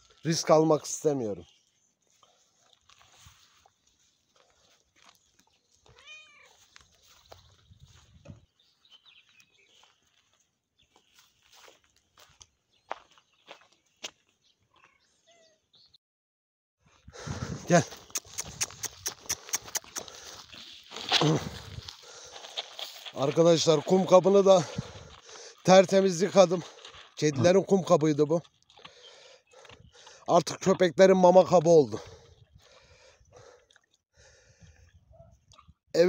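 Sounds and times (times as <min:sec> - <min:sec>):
cat meowing: 0:05.9 - 0:06.6
rustling: 0:20.2 - 0:23.9.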